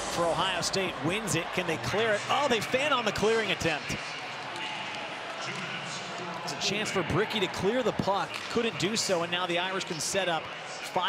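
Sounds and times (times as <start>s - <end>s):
murmur of large crowd: 0.0s - 11.0s.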